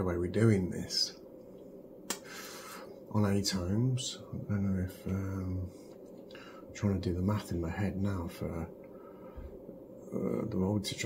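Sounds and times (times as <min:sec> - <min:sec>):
soft hiss: 0:00.0 - 0:11.0
sharp click: 0:02.1 - 0:02.3.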